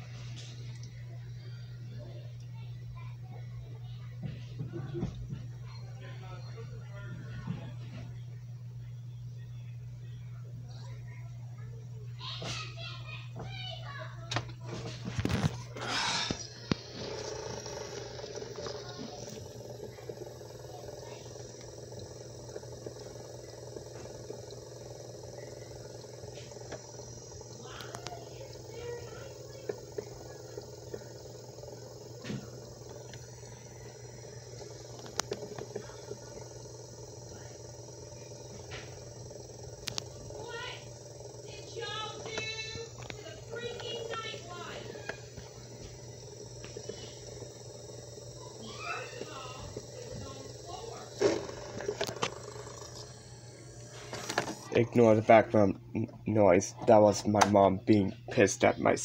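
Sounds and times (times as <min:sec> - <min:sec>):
room and tv hum: 0:00.0 - 0:59.0
faint clicks: 0:16.3 - 0:54.7.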